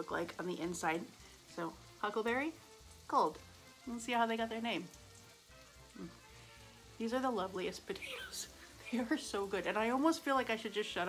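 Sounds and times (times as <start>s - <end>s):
shallots sizzling in a pan: 0.0s - 11.0s
person humming: 5.9s - 6.8s.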